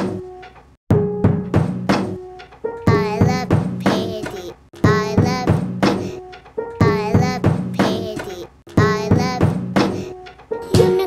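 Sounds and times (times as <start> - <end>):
wooden stick striking piano: 0.0 - 11.0
child singing: 2.9 - 5.6, 6.8 - 9.5, 10.6 - 11.0
ringing piano tones: 10.2 - 11.0.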